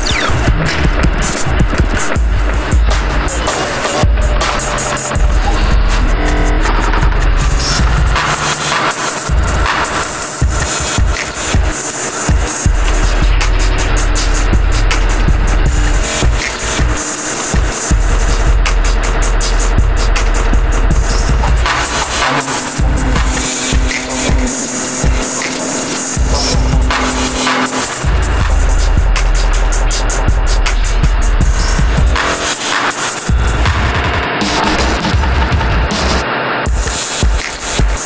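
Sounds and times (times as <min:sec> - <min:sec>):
harsh electronic noise music: 0:00.0 - 0:38.0.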